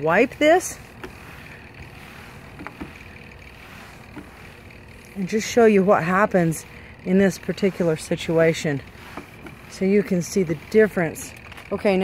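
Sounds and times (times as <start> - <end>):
faint rumbling hum: 0.0 - 12.0.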